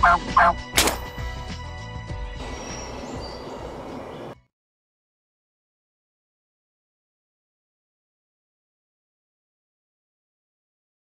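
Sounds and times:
turkey gobbling: 0.0 - 0.6
sharp crack: 0.7 - 1.2.

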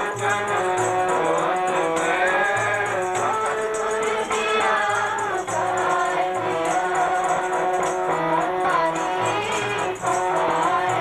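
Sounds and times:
harmonium chords: 0.0 - 11.0
woman singing devotional song: 0.0 - 11.0.

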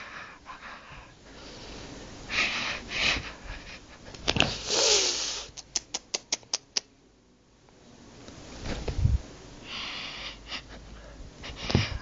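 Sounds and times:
rustling on fabric couch: 8.4 - 9.2.

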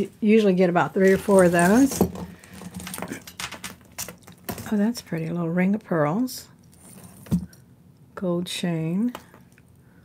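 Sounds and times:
jewelry clicking and clinking: 1.2 - 5.4.

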